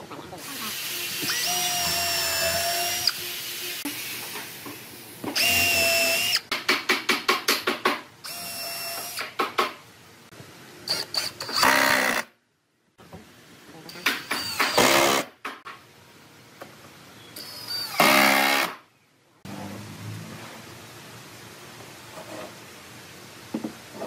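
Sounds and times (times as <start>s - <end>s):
cordless drill boring into wood: 0.6s - 3.8s, 5.4s - 6.4s, 17.4s - 18.7s.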